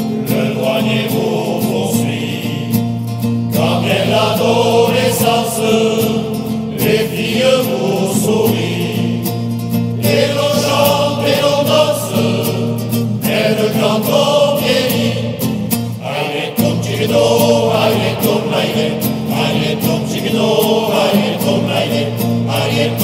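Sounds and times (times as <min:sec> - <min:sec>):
choir singing: 0:00.0 - 0:23.0.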